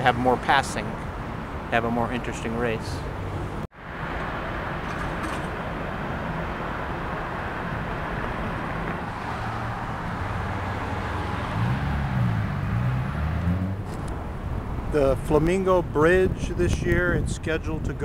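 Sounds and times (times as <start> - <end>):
road traffic passing: 0.0 - 17.9.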